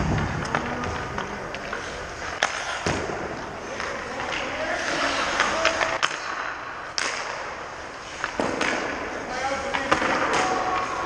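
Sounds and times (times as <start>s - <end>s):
hockey puck cracks: 0.0s - 11.0s.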